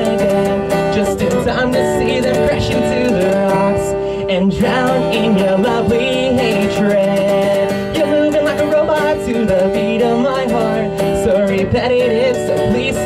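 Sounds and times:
acoustic guitar strumming: 0:00.0 - 0:13.0
person singing: 0:00.0 - 0:13.0.

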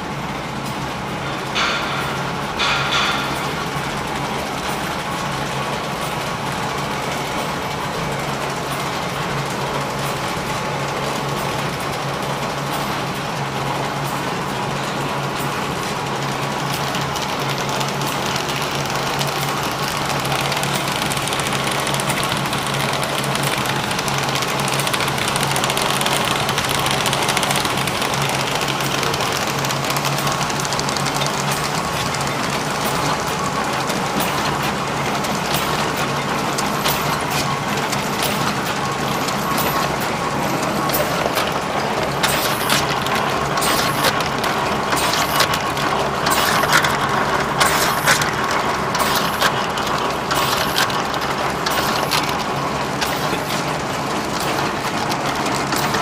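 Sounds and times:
machine clatter: 0:00.0 - 0:56.0
machine mechanical rattle: 0:09.8 - 0:56.0.

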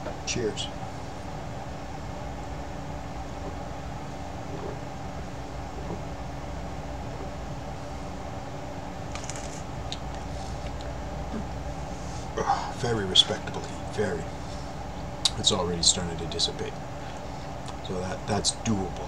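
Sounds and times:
background hum: 0:00.0 - 0:19.0.

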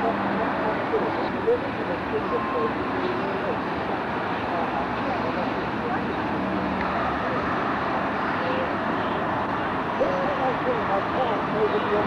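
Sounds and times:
outdoor background rush: 0:00.0 - 0:12.0.

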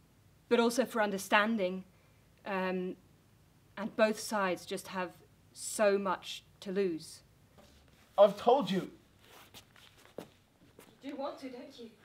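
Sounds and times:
footsteps and shuffling on stage: 0:09.1 - 0:11.2.

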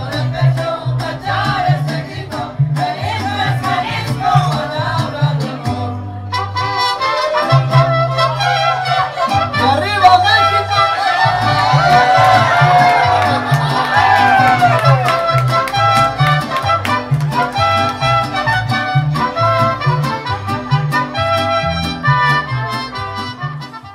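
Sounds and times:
bass line: 0:00.0 - 0:23.9
strummed vihuela: 0:00.0 - 0:23.9
trumpet: 0:06.2 - 0:13.3, 0:13.9 - 0:23.9.

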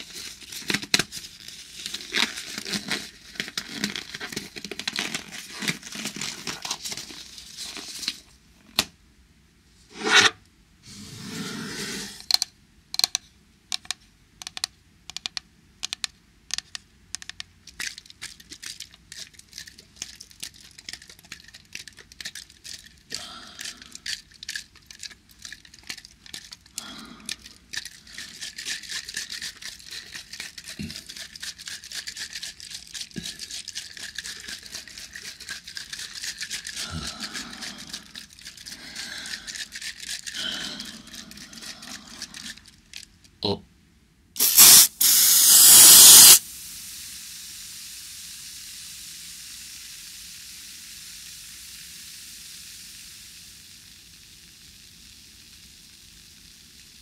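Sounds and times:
crisp clicks and taps: 0:12.4 - 0:17.5.

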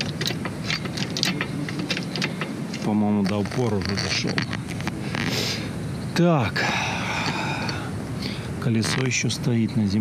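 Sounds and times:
trolley jack clicks and squeaks: 0:00.0 - 0:05.3.

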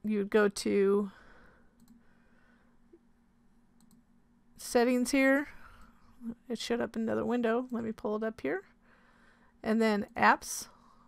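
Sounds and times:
computer mouse clicking: 0:01.8 - 0:02.0, 0:03.8 - 0:04.0.

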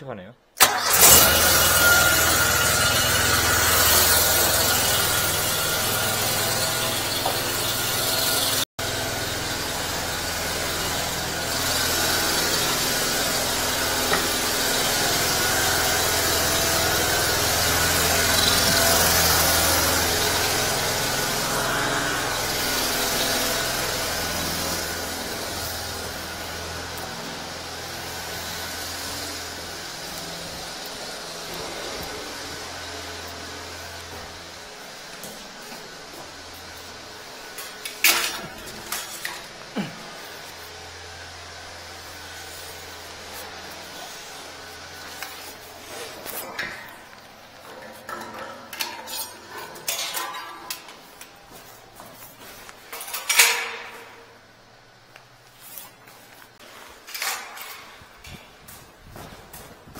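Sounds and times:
truck engine humming: 0:00.6 - 0:45.9.

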